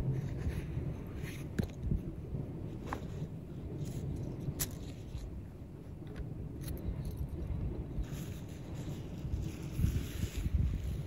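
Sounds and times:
wind rumbling on microphone: 0.0s - 11.0s
tent gear rustling: 8.0s - 11.0s.

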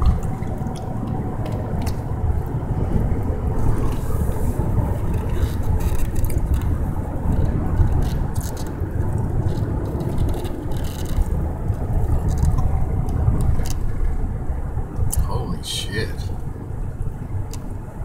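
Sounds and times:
car road and engine noise: 0.0s - 18.0s.

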